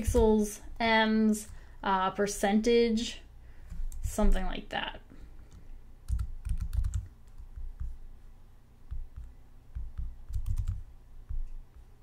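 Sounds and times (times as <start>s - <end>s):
keyboard keys clicking: 6.1s - 7.9s, 8.9s - 11.6s.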